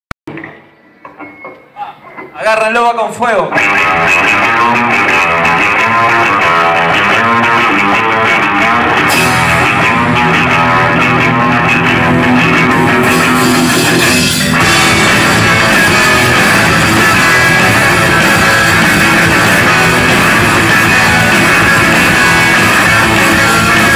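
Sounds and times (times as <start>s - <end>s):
bass guitar: 3.5s - 23.9s
drum kit: 3.5s - 23.9s
electric guitars: 3.5s - 23.9s.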